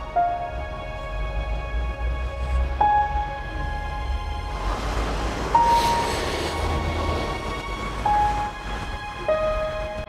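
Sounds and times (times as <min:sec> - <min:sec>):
soft background music: 0:00.0 - 0:10.0
large vehicle passing: 0:00.8 - 0:09.8.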